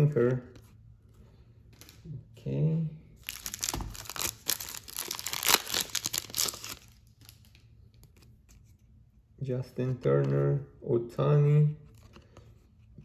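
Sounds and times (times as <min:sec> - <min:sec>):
foil pack tearing and crinkling: 0:03.2 - 0:07.4.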